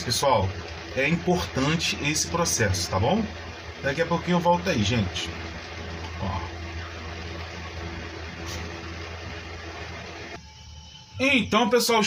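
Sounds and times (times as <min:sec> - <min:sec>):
motor humming with hiss: 0:00.0 - 0:11.7.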